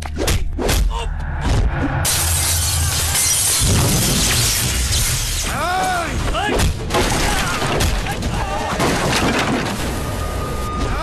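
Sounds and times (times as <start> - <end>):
loud dense crash: 1.5 - 5.4.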